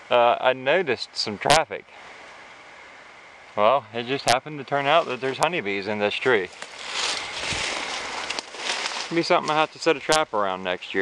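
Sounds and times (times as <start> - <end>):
crackling rustling noise: 4.8 - 10.3.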